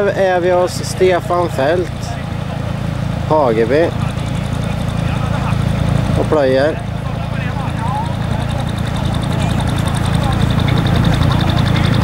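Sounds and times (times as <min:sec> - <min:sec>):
tractor engine idling: 0:00.0 - 0:12.0.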